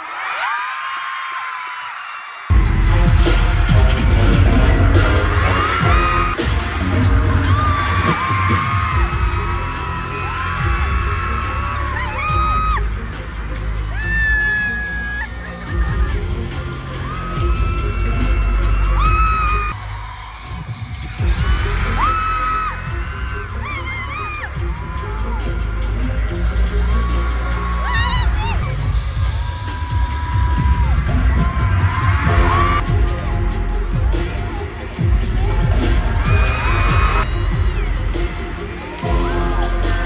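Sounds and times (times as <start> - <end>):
fans screaming: 0.0 - 40.0
concert music with heavy bass: 2.5 - 40.0.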